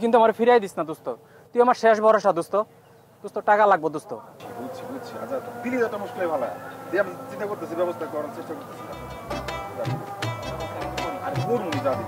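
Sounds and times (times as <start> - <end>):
man speaking: 3.3 - 12.0
steady buzzing drone: 4.4 - 12.0.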